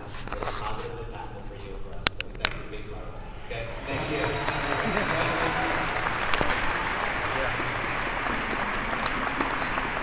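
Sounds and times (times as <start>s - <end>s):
large audience applauding: 3.8s - 10.0s.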